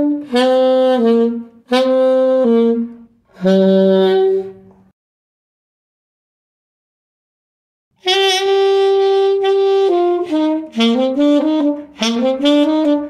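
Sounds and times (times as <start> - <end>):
solo saxophone ballad: 0.0 - 4.9, 8.0 - 13.0.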